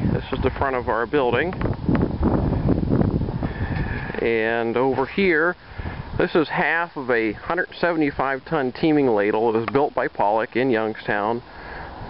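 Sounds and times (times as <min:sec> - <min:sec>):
wind buffeting microphone: 0:00.0 - 0:10.0
faint steady high whine: 0:00.0 - 0:12.0.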